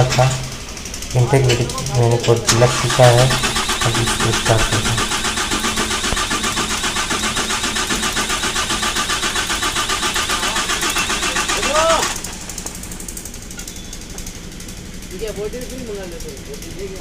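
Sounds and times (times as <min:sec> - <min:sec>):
diesel engine cranking: 0:00.0 - 0:17.0.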